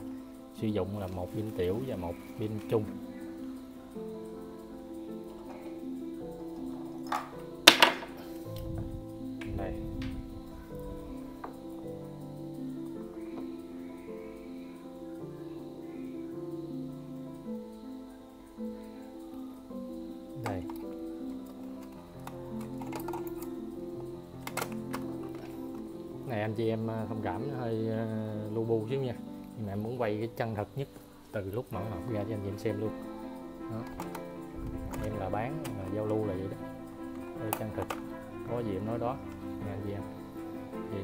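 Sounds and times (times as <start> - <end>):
music with sustained notes: 0.0 - 41.0
battery clicking into holder: 20.4 - 25.9, 33.8 - 36.2, 37.1 - 38.2.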